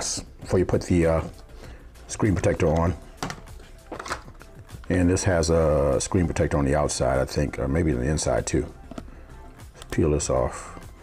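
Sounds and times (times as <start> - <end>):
plastic phone case clicks: 3.2 - 4.5.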